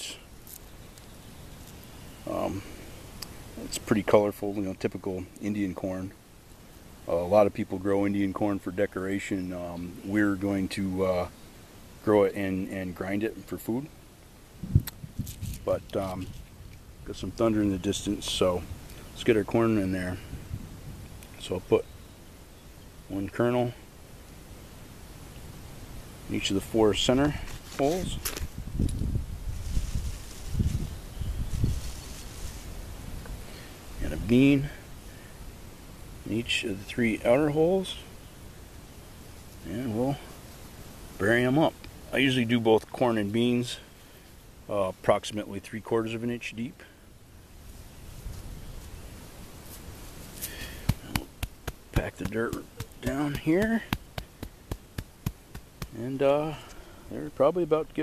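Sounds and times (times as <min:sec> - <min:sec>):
light rustle: 0:00.2 - 0:04.2, 0:14.6 - 0:17.5, 0:26.8 - 0:35.5, 0:46.8 - 0:57.0
wind buffeting microphone: 0:14.6 - 0:17.3, 0:20.1 - 0:21.2, 0:27.9 - 0:32.2
hand patting soil: 0:26.6 - 0:28.6, 0:49.6 - 0:56.8.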